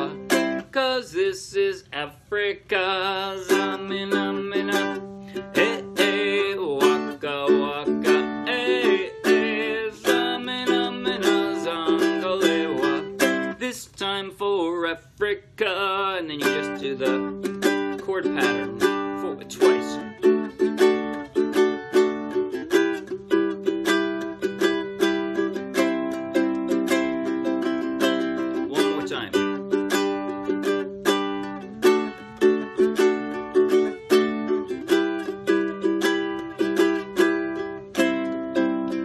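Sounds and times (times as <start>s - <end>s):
man singing: 0.0s - 20.4s, 28.4s - 29.6s
ukulele strumming: 0.0s - 39.0s.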